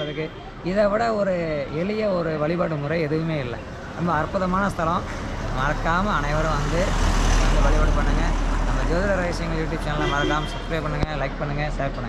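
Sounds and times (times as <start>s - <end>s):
vehicle passing by: 3.6s - 10.0s.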